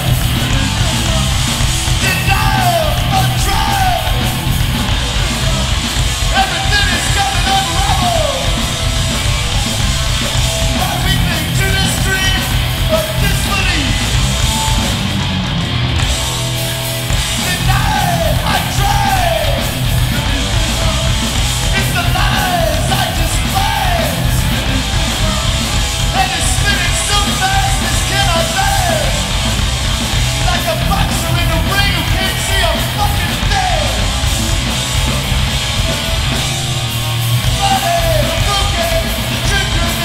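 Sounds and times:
singer yelling into microphone: 0.0s - 9.8s, 10.4s - 14.2s, 17.3s - 29.4s, 30.4s - 34.2s, 37.4s - 40.0s
distorted electric guitars: 0.0s - 40.0s
drums: 0.0s - 40.0s
punk band playing: 0.0s - 40.0s.

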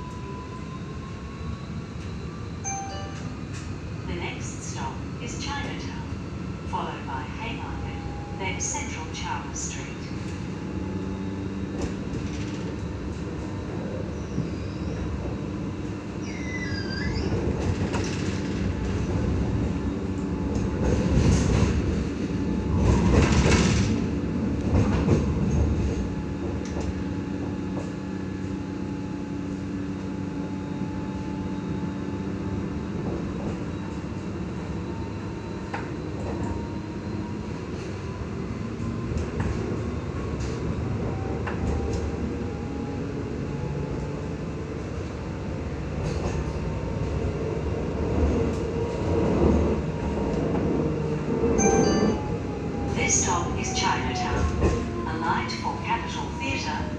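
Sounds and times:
tram motor and rolling hum: 0.0s - 56.9s.

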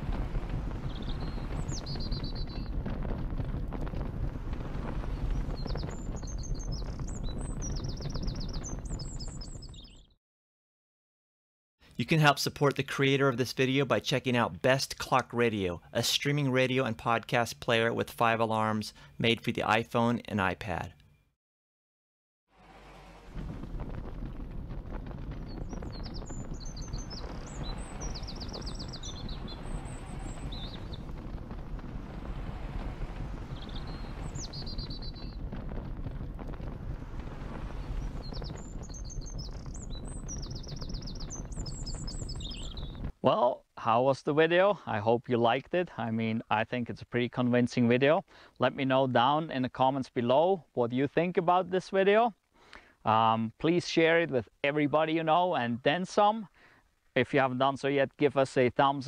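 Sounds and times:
steady low rumble: 0.0s - 9.5s, 22.5s - 43.2s
small birds chirping: 0.1s - 4.0s, 4.6s - 10.2s, 25.0s - 35.8s, 37.8s - 43.1s.

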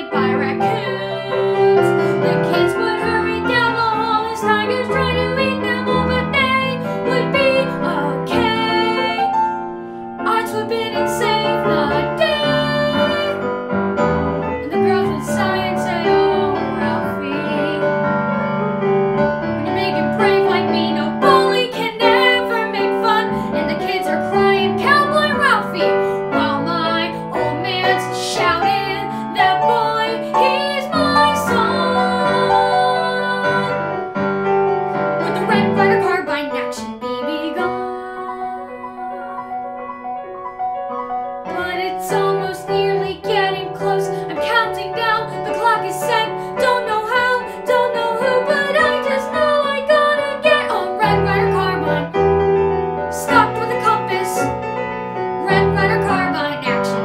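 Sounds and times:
boy singing: 0.0s - 9.2s, 10.3s - 13.4s, 19.7s - 33.8s, 41.5s - 52.1s, 53.2s - 54.6s, 55.4s - 57.0s
piano accompaniment: 0.0s - 57.0s.

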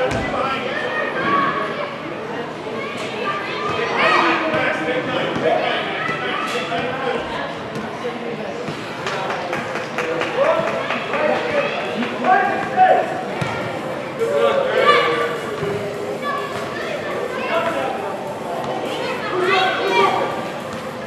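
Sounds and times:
players and spectators calling out: 0.0s - 21.0s.

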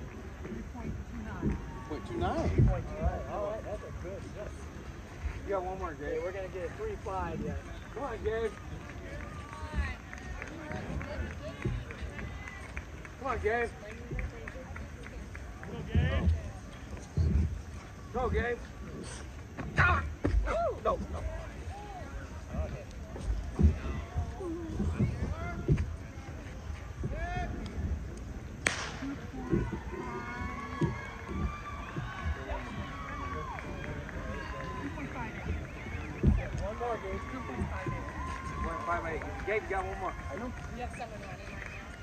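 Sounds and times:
background chatter: 0.0s - 42.0s
wind rumble on microphone: 21.0s - 38.7s.

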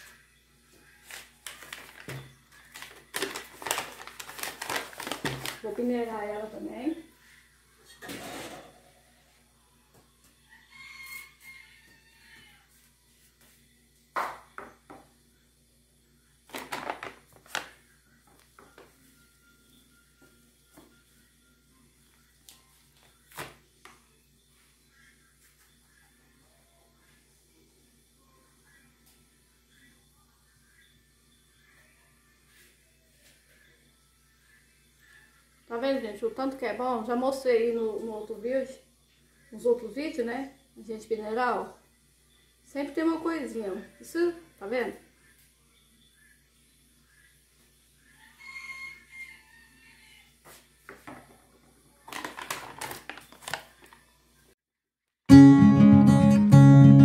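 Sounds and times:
flour bag rustling: 1.0s - 6.2s, 16.5s - 17.8s, 52.1s - 54.0s.

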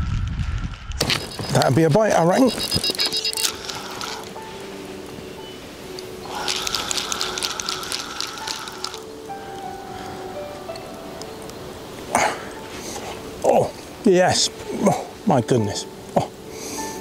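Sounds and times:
fishing reel drag clicking: 1.0s - 4.3s, 6.3s - 9.1s.

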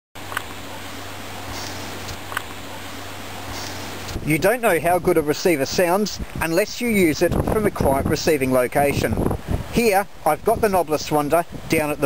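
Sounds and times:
steady hiss: 0.2s - 12.0s.

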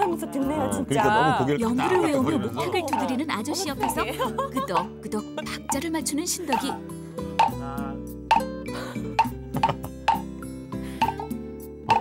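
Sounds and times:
background music: 0.0s - 12.0s
wooden temple block knocks: 8.3s - 8.6s.

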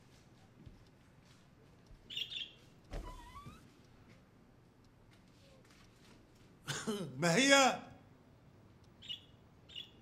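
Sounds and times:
door hinges creaking: 2.9s - 3.7s.

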